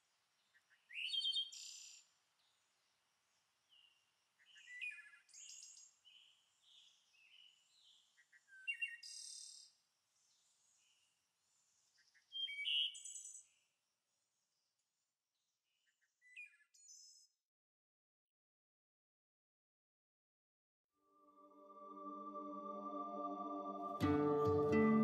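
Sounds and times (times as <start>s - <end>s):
birds chirping and trilling: 11.9s - 13.5s.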